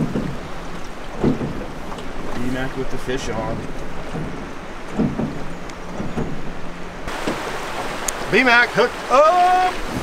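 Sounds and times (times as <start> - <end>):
fast river current rushing: 0.0 - 10.0.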